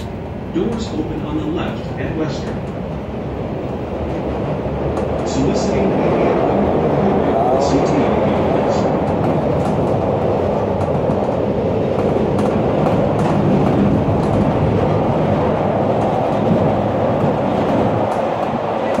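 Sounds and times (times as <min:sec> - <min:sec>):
rail clicks: 0:00.0 - 0:19.0
train wheels rumbling: 0:00.0 - 0:19.0.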